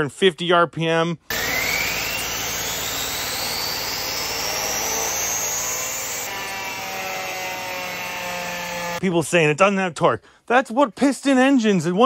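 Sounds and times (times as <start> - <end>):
turbine whine rising in pitch: 1.3 - 9.0.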